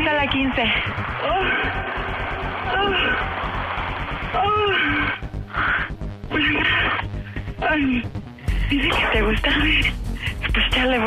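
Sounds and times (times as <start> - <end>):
background music: 0.0 - 11.0
woman moaning over telephone: 4.3 - 5.2.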